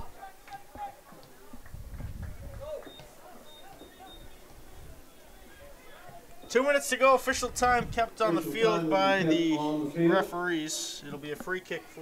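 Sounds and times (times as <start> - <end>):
distant shouting voices: 0.0 - 1.7, 2.4 - 7.5.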